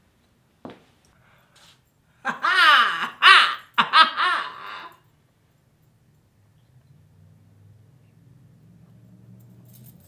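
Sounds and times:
woman laughing: 2.2 - 5.0.

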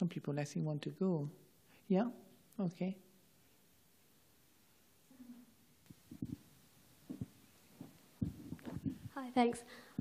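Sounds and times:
faint low thumps and bumps: 5.9 - 6.5, 7.1 - 9.2
person speaking: 8.2 - 10.0.

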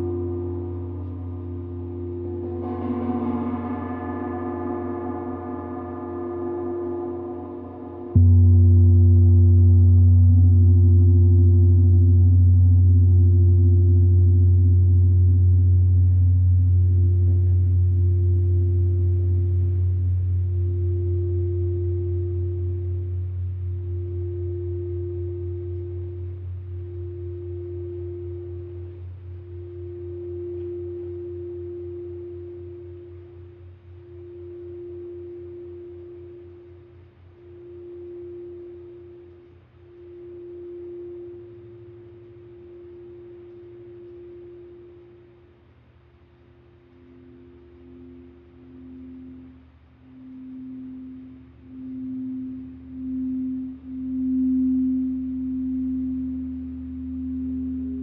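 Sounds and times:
crystal singing bowl ringing: 0.0 - 14.8, 17.2 - 45.6, 46.4 - 58.0
deep gong hum: 0.0 - 33.3.

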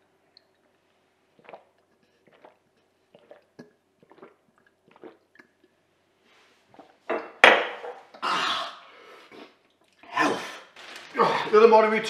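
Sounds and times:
person gulping liquid: 0.3 - 5.9, 6.7 - 11.5
person speaking: 11.0 - 12.0.

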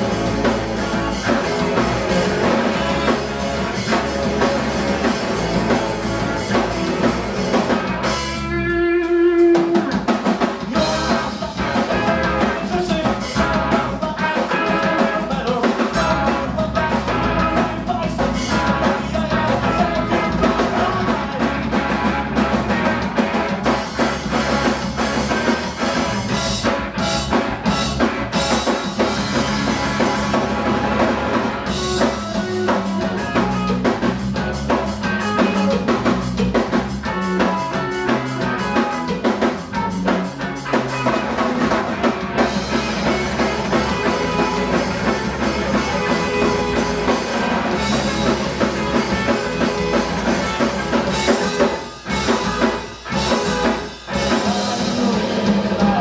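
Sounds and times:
drum kit: 0.0 - 56.0
punk rock band playing live: 0.0 - 56.0.

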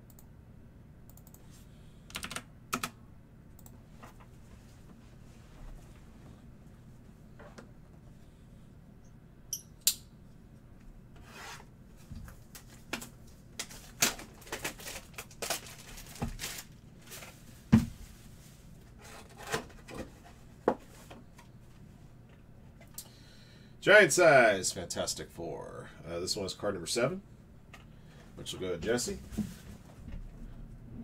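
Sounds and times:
plastic wrap crinkling: 13.6 - 17.4
cardboard and packs rustling: 13.6 - 18.4
person speaking: 28.4 - 29.4.

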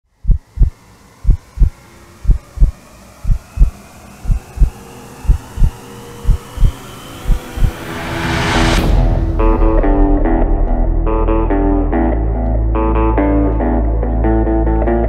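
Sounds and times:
faint rising drone: 0.1 - 15.0
heartbeat thumps: 0.2 - 7.9.

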